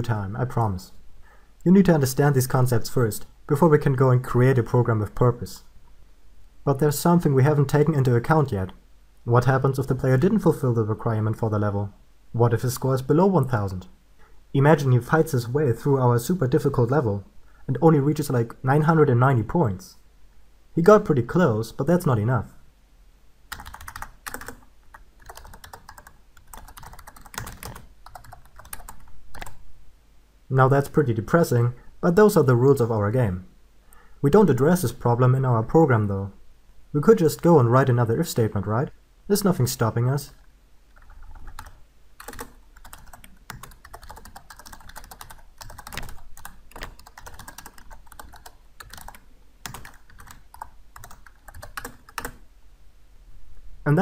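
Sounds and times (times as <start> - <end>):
computer keyboard key clicks: 41.6 - 50.4.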